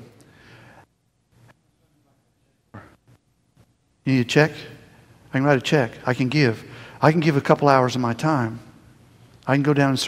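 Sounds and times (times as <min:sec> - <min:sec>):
man speaking: 0:04.0 - 0:08.8, 0:09.4 - 0:10.0.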